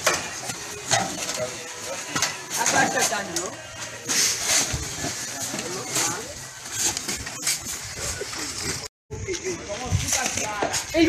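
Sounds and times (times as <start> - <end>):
people talking and calling out: 0.3 - 11.0.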